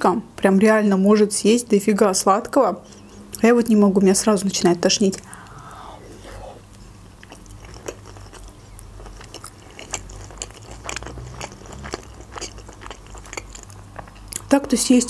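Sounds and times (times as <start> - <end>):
steady low hum: 0.0 - 14.5
close chewing mouth sounds: 2.8 - 3.5, 4.8 - 14.6.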